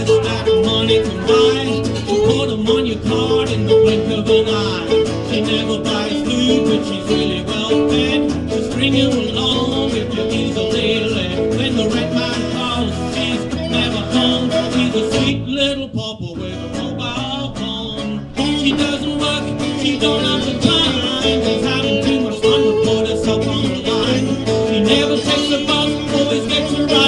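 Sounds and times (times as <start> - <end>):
electric guitars: 0.0 - 27.0
strummed acoustic guitar: 0.0 - 27.0
drums: 16.6 - 27.0.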